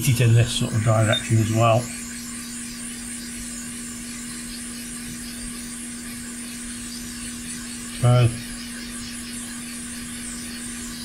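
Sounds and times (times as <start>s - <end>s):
hot air blower hissing: 0.0s - 11.0s
steady low hum: 0.0s - 11.0s.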